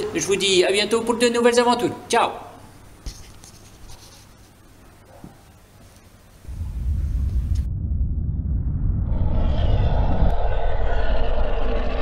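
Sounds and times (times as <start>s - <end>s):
deep rumble: 6.4s - 12.0s.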